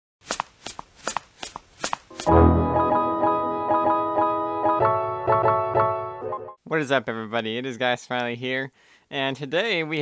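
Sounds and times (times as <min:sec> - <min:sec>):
toy footsteps quick clicks: 0:00.2 - 0:02.3.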